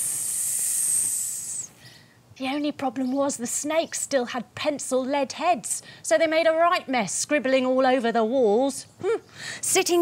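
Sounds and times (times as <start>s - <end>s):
woman hissing like a snake: 0.0s - 1.8s.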